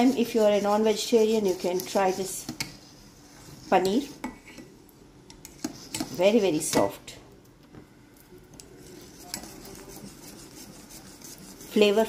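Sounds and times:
whisk clinking and scraping pot: 0.0s - 4.7s, 5.3s - 7.0s, 8.8s - 12.0s.

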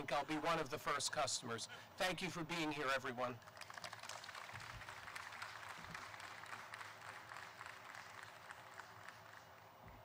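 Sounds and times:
audience applauding: 3.5s - 9.7s.

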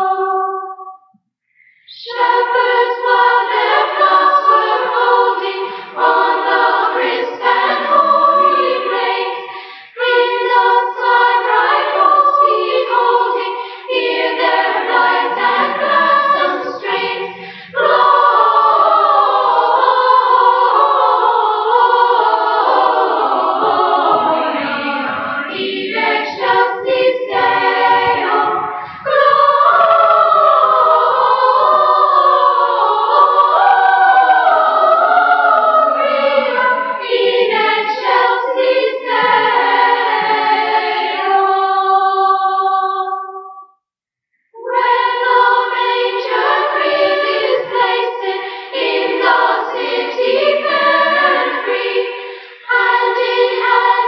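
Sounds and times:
children's choir singing: 0.0s - 43.6s, 44.5s - 54.0s.

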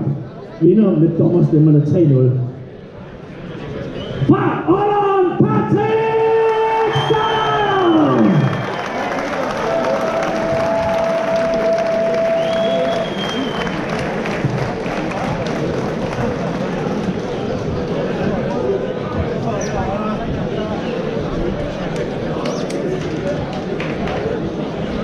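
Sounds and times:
crowd cheering and applauding: 6.4s - 18.0s.

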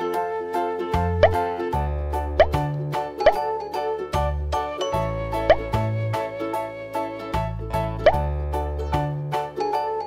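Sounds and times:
cheerful children's music: 0.0s - 10.0s
rising bloop pop: 1.2s - 1.6s, 2.4s - 3.5s, 5.4s - 6.0s.

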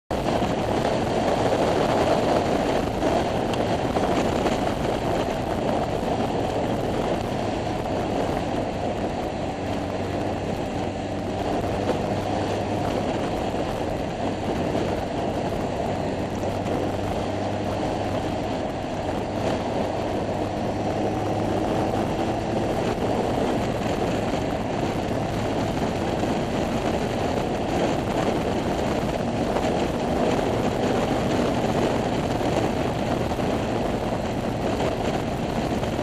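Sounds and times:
motorbike engine running: 0.1s - 36.0s
wind rushing over microphone: 0.1s - 36.0s.

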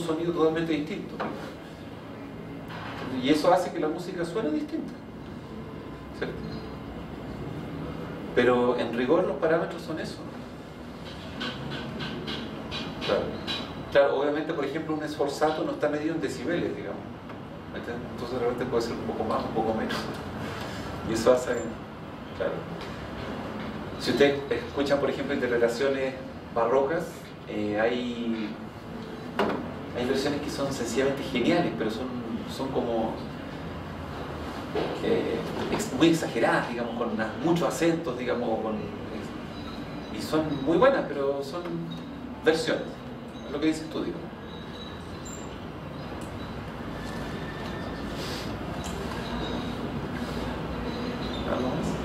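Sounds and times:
low rumbling background noise: 0.0s - 52.0s.

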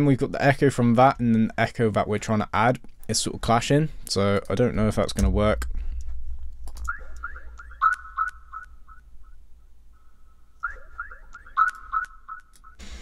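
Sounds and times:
low steady hum: 0.0s - 11.4s
synth sound with delay echoes: 6.8s - 9.4s.

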